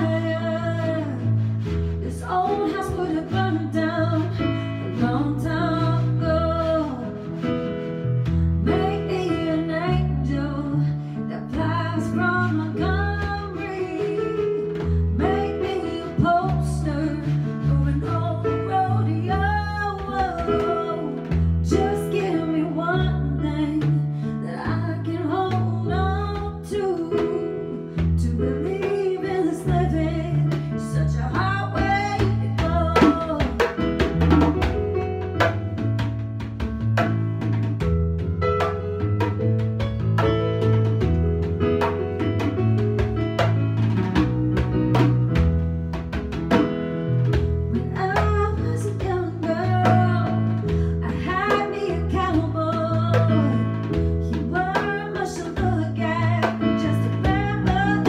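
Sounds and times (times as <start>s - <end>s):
woman singing a slow ballad: 0.0s - 7.6s, 8.6s - 33.8s, 47.8s - 58.0s
electric keyboard chords: 24.5s - 58.0s.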